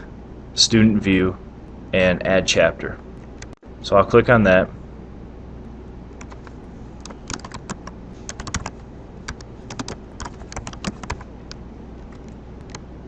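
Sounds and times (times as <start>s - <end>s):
steady low hum: 0.0s - 13.0s
typing on computer keyboard: 6.2s - 12.8s.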